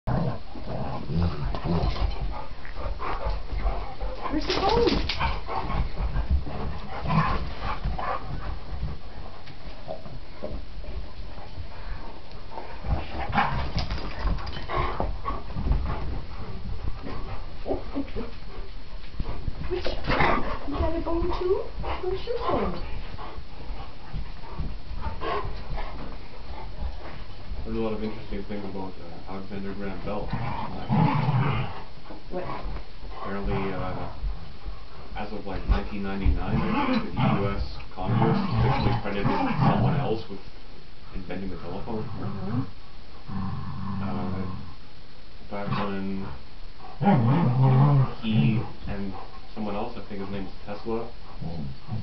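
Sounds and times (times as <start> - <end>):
dogs growling: 0.1 - 10.6, 12.3 - 28.2, 29.8 - 34.3, 35.6 - 40.3, 41.7 - 44.8, 45.6 - 52.0
dogs panting: 0.1 - 28.8, 29.6 - 40.0, 45.7 - 52.0.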